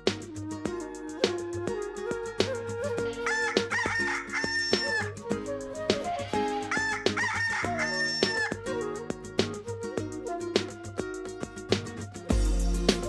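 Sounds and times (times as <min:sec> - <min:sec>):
background music: 0:00.0 - 0:13.0
rooster crowing: 0:03.2 - 0:05.2, 0:06.8 - 0:08.5.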